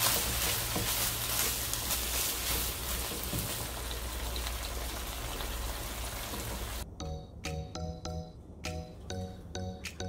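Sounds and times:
meat sizzling in a frying pan: 0.0s - 6.8s
spatula stirring in pan: 0.0s - 6.8s.

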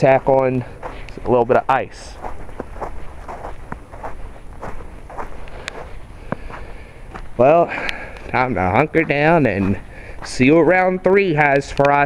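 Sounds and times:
footsteps on icy snow crust: 0.0s - 11.8s.

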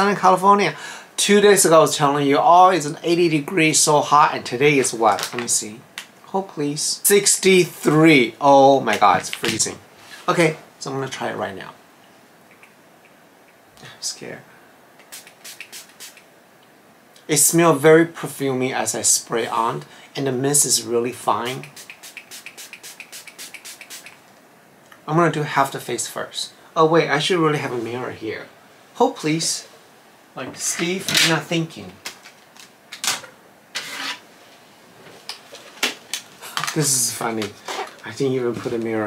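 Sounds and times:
spray bottle hissing: 15.0s - 16.3s, 21.5s - 24.2s
scraping rustle: 33.8s - 35.8s.

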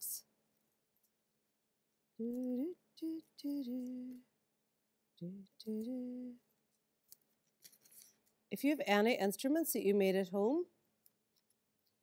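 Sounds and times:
woman humming: 2.2s - 4.3s, 5.2s - 6.4s.

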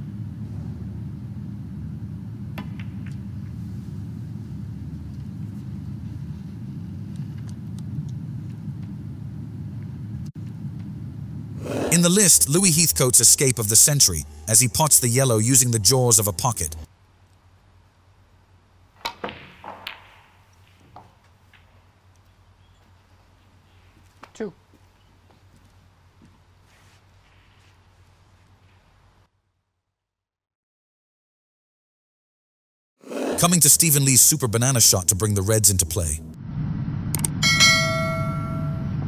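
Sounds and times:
low steady hum: 0.0s - 19.0s, 33.4s - 39.0s
cue striking ball: 19.0s - 21.6s
snooker balls clicking and knocking: 19.0s - 22.3s
bright bell chime: 37.4s - 39.0s.

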